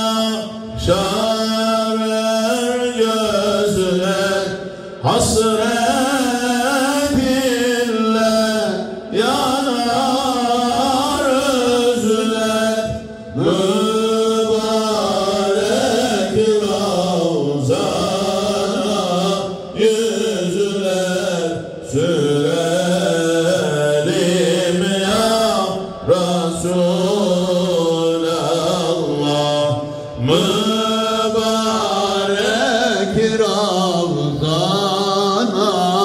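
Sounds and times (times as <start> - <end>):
man chanting religious recitation: 0.0 - 36.0.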